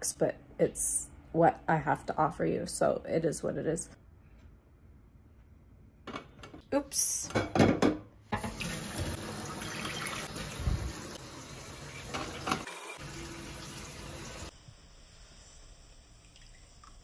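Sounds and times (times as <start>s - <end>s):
tap water running into sink: 8.4s - 14.5s.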